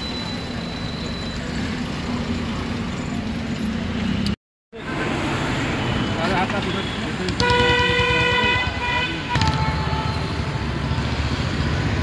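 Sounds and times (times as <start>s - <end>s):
street noise: 0.0s - 12.0s
people talking: 6.2s - 7.4s.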